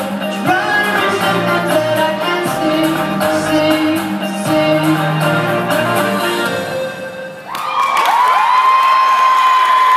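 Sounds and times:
dance music: 0.0s - 7.8s
audience cheering: 7.4s - 9.9s.

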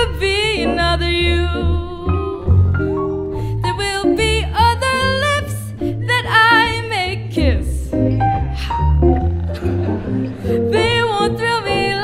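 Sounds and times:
woman singing: 0.0s - 2.7s, 3.6s - 7.9s, 10.5s - 12.0s
piano: 0.0s - 12.0s
upright bass: 0.0s - 12.0s.

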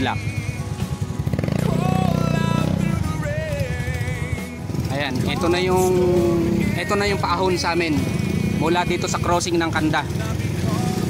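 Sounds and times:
background music with singing: 0.0s - 11.0s
motorcycle engine running: 0.0s - 11.0s.

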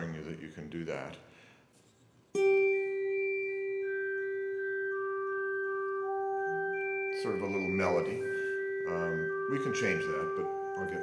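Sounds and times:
synthesizer harmonic arpeggio: 2.4s - 11.0s
synthesizer sustained note: 2.4s - 11.0s.

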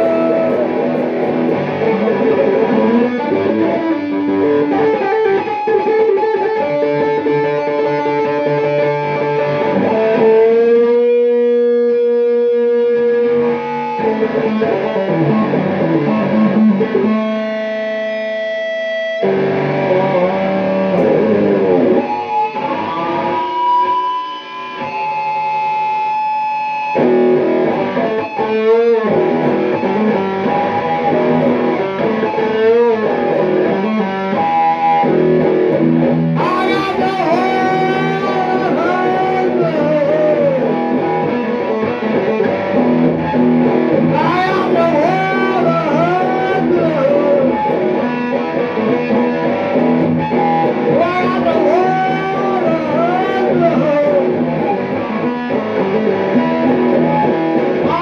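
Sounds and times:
man singing: 0.0s - 1.0s, 36.4s - 40.8s, 44.1s - 47.7s, 50.9s - 54.4s
distorted electric guitar blues: 0.0s - 58.0s.

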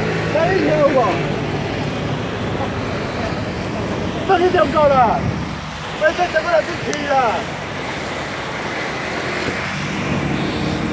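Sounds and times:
cars and scooters driving past: 0.0s - 10.9s.

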